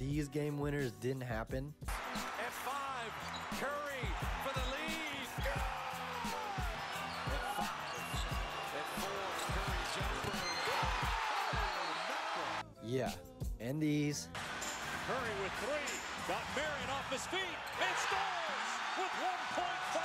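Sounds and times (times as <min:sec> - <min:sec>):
background music: 0:00.0 - 0:20.0
arena crowd: 0:01.9 - 0:12.6, 0:14.4 - 0:20.0
sneakers squeaking: 0:03.1 - 0:12.3.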